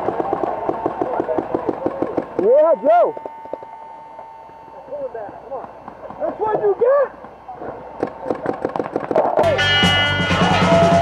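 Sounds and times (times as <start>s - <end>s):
paintball marker shots: 8.0s - 9.4s
loud music: 9.4s - 11.0s
people shouting: 9.4s - 11.0s.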